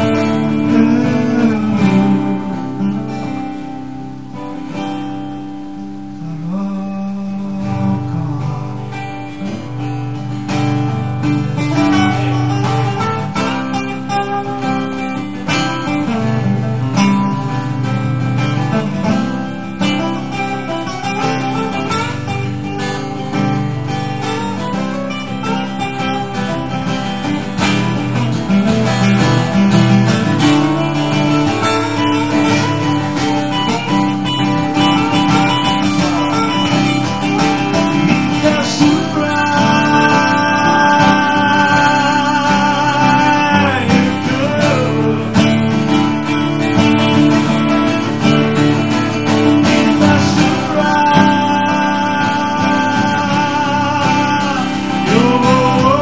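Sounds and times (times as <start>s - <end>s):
two acoustic guitars playing: 0.0s - 56.0s.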